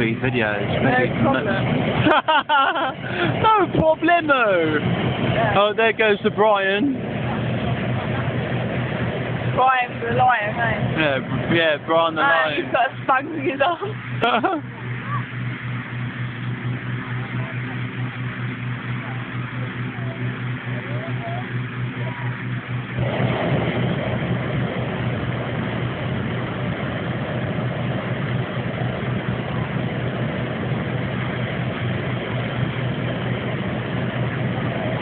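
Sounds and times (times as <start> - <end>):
fan engine humming: 0.0 - 35.0
propane burner rushing: 0.0 - 35.0.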